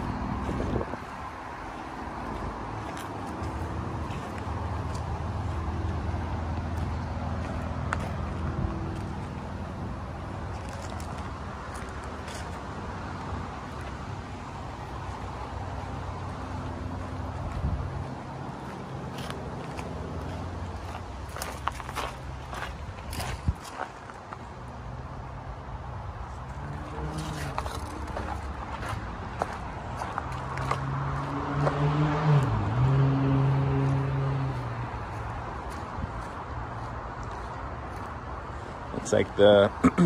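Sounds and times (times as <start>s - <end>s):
footsteps across a yard: 0.0s - 39.6s
freeway traffic noise: 0.0s - 40.0s
vehicle engine hum: 0.0s - 40.0s.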